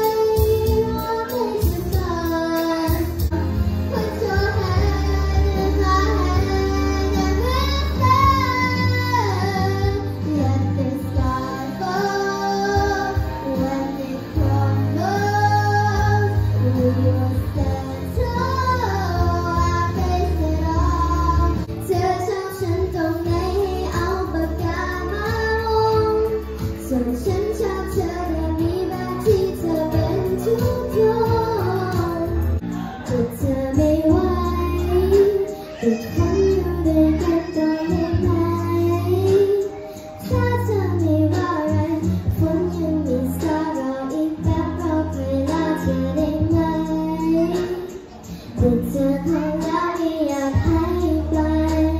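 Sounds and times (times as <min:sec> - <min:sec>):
girl singing into microphone: 0:00.0 - 0:51.9
pop accompaniment with bass line: 0:00.0 - 0:51.9.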